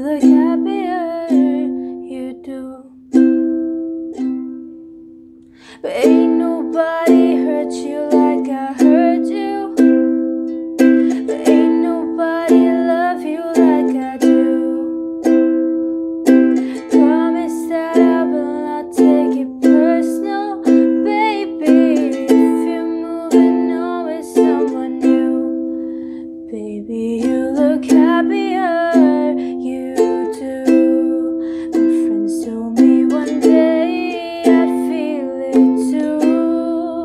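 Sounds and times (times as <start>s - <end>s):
woman singing wordless melody: 0.0s - 3.6s, 5.6s - 37.0s
ukulele strumming: 0.0s - 37.0s.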